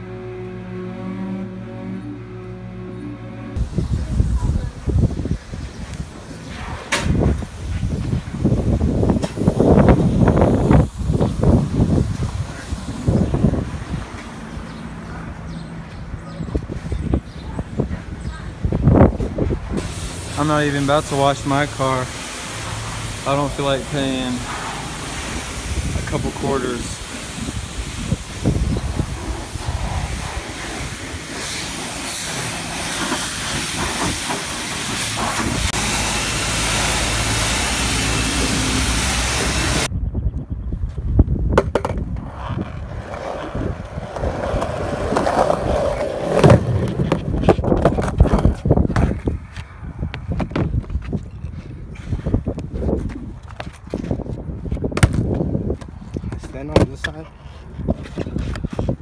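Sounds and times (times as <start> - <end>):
loud steady hiss: 19.8 - 39.9
skateboard wheels rolling: 41.5 - 59.0.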